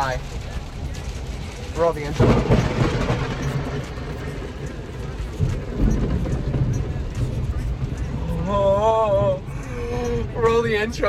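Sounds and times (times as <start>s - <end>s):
heavy rain on vehicle roof: 0.0s - 11.0s
low rumble: 0.0s - 11.0s.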